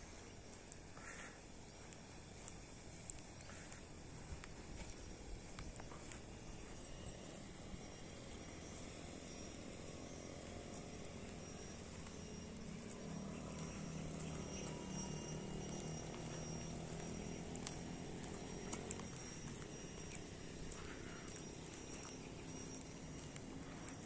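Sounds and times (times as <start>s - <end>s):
distant engine hum: 0.0s - 24.0s
insects high tones: 0.0s - 24.0s.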